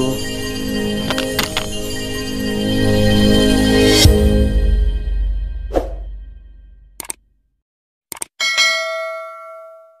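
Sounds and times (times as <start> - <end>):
background music: 0.0 - 7.0
bell ding: 8.4 - 10.0.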